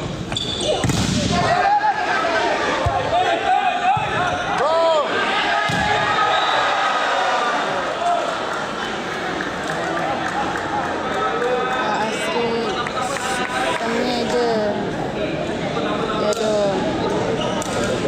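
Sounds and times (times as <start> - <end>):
sneaker squeaks on court: 0.3 - 0.9
volleyball hits: 0.3 - 1.5.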